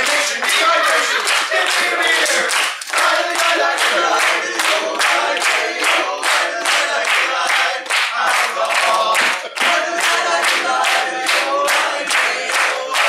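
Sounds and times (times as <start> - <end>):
men singing a cappella: 0.0 - 13.0
rhythmic hand-clapping: 0.0 - 13.0.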